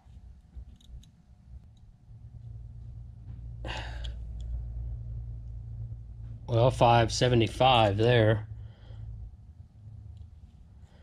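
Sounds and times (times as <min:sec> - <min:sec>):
low hum: 0:00.0 - 0:11.0
person sighing: 0:03.6 - 0:04.2.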